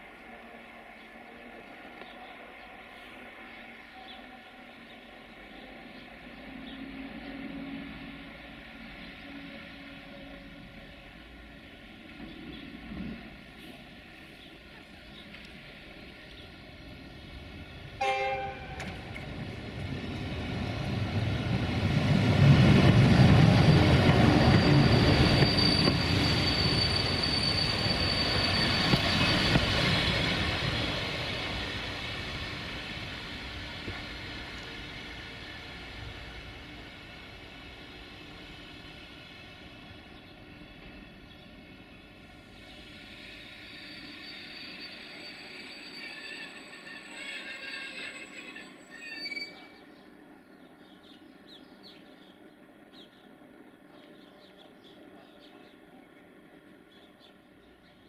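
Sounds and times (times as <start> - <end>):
train rumbling past: 0.0 - 58.0
train horn blast: 18.0 - 19.1
thin high squeal: 24.5 - 29.6, 43.7 - 49.8.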